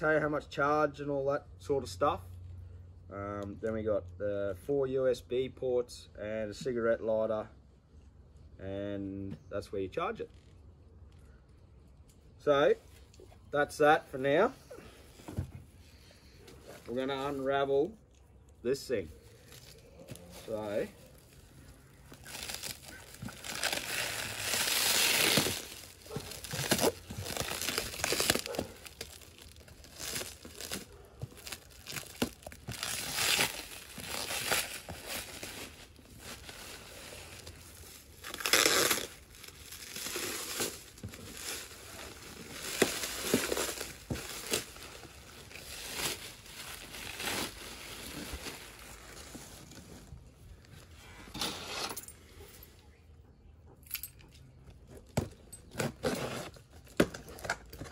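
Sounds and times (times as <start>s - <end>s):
plastic wrapping being torn: 20.6s - 49.1s.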